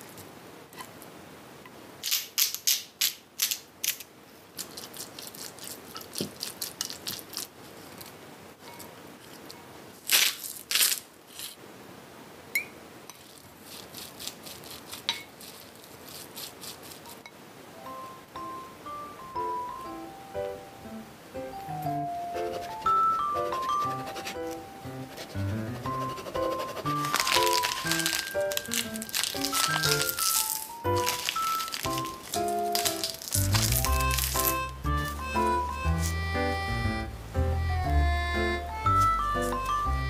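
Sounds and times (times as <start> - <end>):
quiet music: 17.8 - 40.0.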